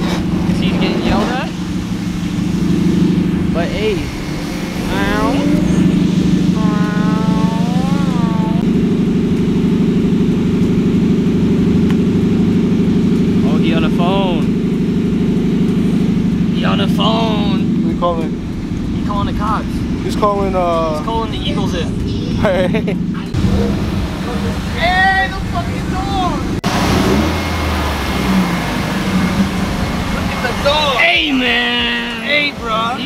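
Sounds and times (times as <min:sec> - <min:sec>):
people's voices and calls: 0:00.0 - 0:08.7, 0:13.7 - 0:26.6
car engine running: 0:00.0 - 0:33.0.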